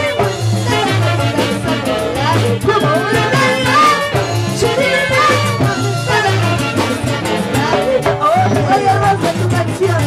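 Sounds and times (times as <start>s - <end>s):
saxophones playing melody: 0.0s - 9.2s
live band playing: 0.0s - 10.0s.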